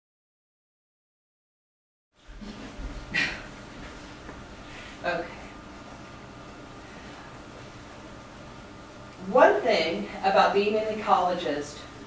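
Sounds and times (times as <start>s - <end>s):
room hum with faint hiss: 2.2s - 12.0s.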